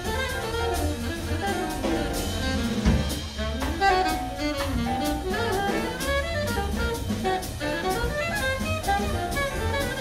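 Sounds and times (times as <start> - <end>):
alto saxophone bebop line: 0.0 - 10.0
drum kit with cymbals: 0.0 - 10.0
piano: 0.0 - 10.0
upright bass: 0.0 - 10.0.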